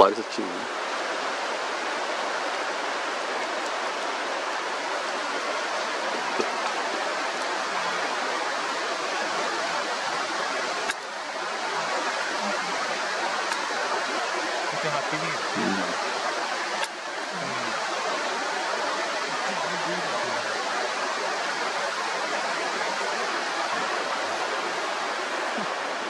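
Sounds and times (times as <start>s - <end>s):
river water over stony bed: 0.0s - 26.0s.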